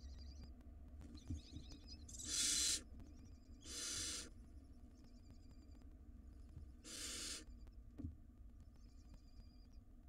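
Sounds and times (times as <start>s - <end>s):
owl nestlings hissing calls: 2.2s - 2.9s, 3.6s - 4.3s, 6.8s - 7.5s.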